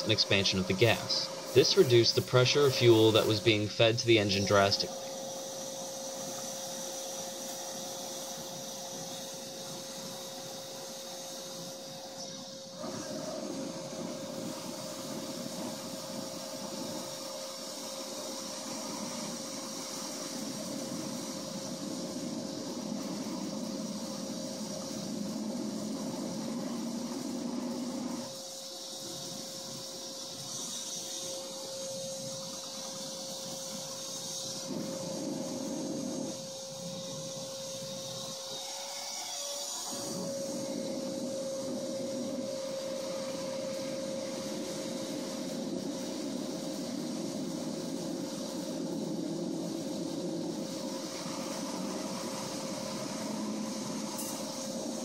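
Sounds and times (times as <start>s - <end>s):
rushing air: 0.0s - 30.2s, 31.2s - 38.6s, 39.8s - 55.0s
vacuum motor whine: 0.0s - 55.0s.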